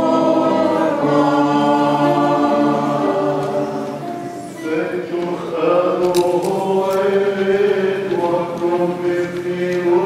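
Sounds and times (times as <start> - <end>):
liturgical chant singing: 0.0 - 10.0.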